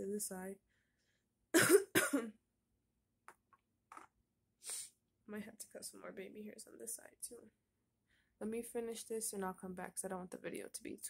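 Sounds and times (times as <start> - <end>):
woman coughing: 1.6 - 2.4.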